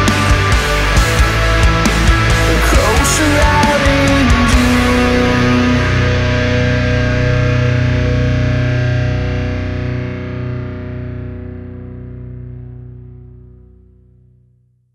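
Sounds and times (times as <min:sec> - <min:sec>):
distorted electric guitar chord ringing: 0:00.0 - 0:14.1.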